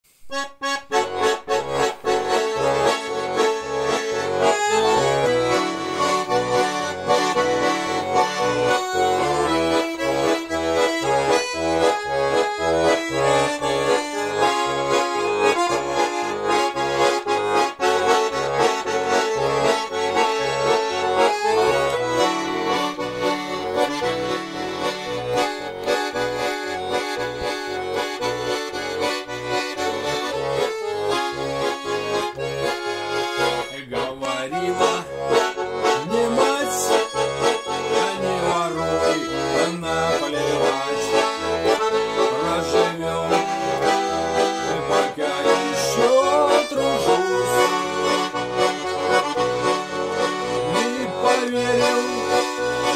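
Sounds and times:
button accordion playing: 0.2 - 52.9.

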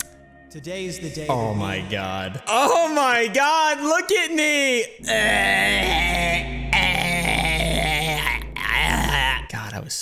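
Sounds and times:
man making wavering vocal noise: 5.0 - 9.5.

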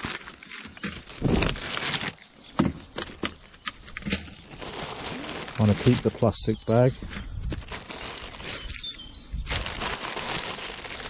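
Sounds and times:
plastic bag and wrappers rustling: 0.0 - 11.0.

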